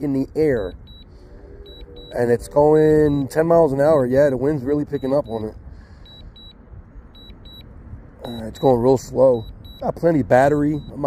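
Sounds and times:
low outdoor rumble: 0.0 - 11.0
strong wind: 0.0 - 11.0
short high beeps: 0.8 - 2.4.

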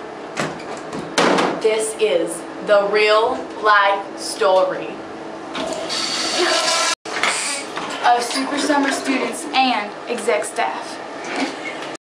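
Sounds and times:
toilet flushing: 5.6 - 7.0, 7.8 - 9.8.

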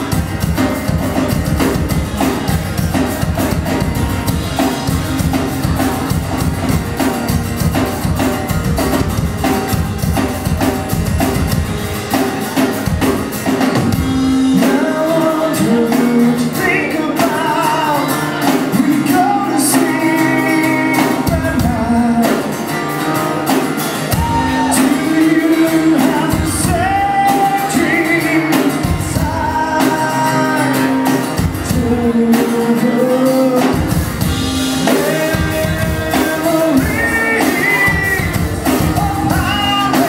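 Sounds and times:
drums: 0.0 - 40.0
rock band playing live: 0.0 - 40.0
strummed acoustic guitar: 0.0 - 40.0
person singing lead vocals: 13.9 - 22.9, 24.0 - 40.0.

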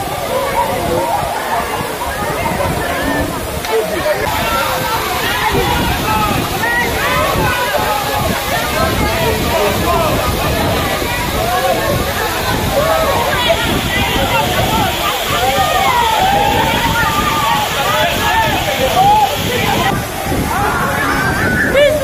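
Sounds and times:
voices calling out: 0.0 - 22.0
waterfall pouring and splashing: 0.0 - 22.0.

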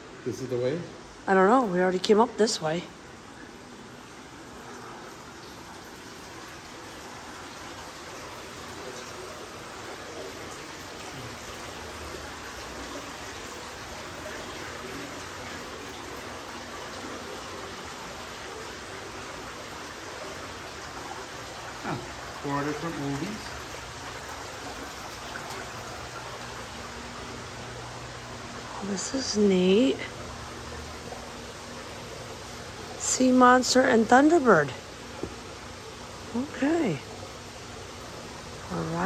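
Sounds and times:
running water rushing: 0.0 - 39.0.

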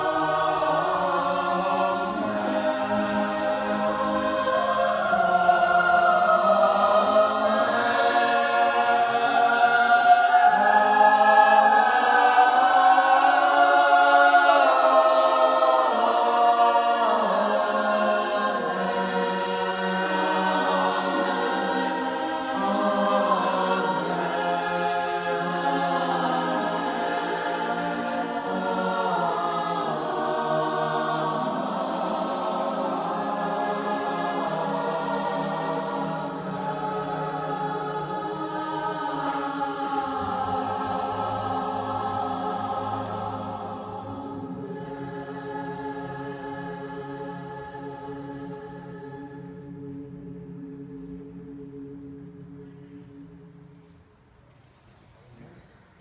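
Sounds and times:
choir singing unaccompanied: 0.0 - 54.5.

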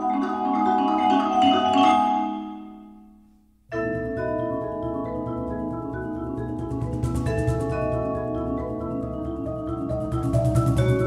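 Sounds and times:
marimba and vibraphone playing: 0.0 - 11.0.

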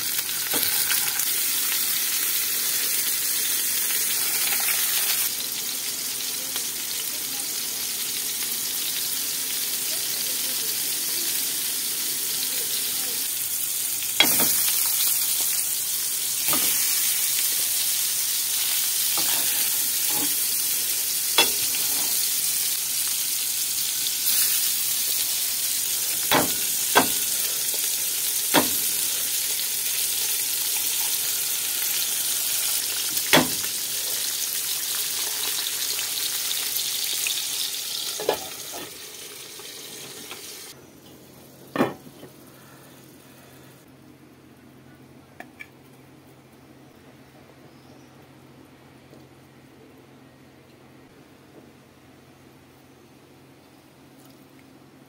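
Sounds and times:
meat sizzling in a pan: 0.0 - 40.8.

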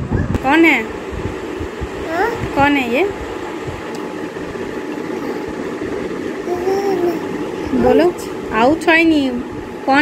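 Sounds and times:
steady mechanical hum: 0.0 - 10.0.

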